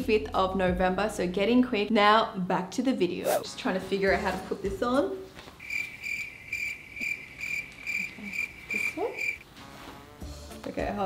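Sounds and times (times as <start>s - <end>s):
cricket chirping: 5.6s - 9.4s.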